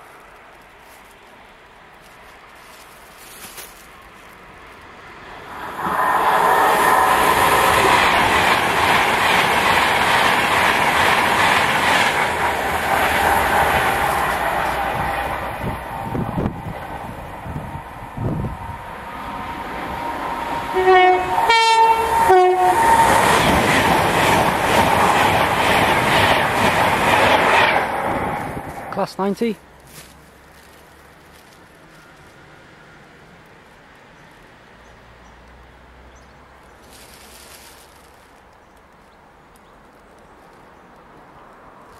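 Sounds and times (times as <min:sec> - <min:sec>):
electric train passing at speed: 0:03.8 - 0:29.6, 0:30.7 - 0:36.2, 0:40.9 - 0:41.9
two-tone train horn: 0:20.6 - 0:23.1.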